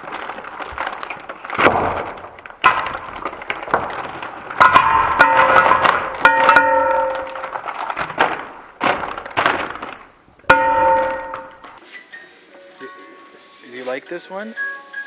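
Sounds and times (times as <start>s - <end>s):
wrapped candies clattering into plastic bowl: 0.0s - 11.8s.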